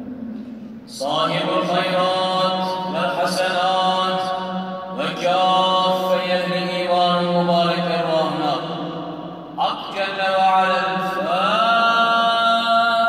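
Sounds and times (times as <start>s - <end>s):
man chanting in long held notes: 0.9s - 13.0s.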